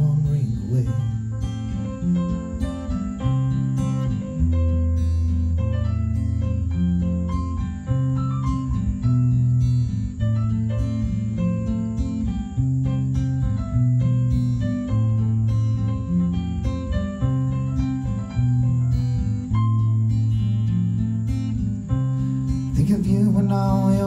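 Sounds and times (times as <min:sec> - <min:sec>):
person singing: 0:00.0 - 0:01.2, 0:22.7 - 0:24.0
acoustic guitar picking: 0:00.0 - 0:24.0
low bass notes: 0:00.0 - 0:24.0.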